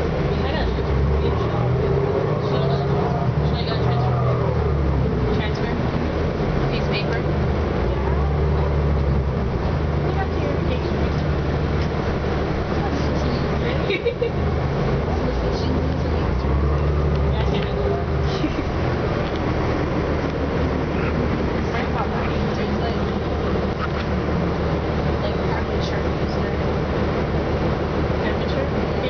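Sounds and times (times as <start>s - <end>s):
bus engine droning: 0.0s - 29.0s.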